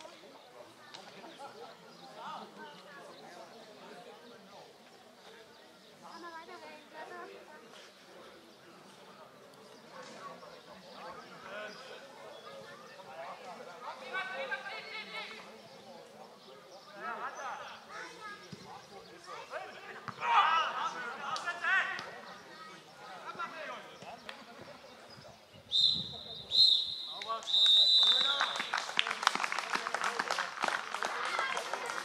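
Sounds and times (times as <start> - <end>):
players shouting: 19.4 - 22.1
referee's whistle blasts: 25.7 - 28.6
people clapping: 27.1 - 32.0.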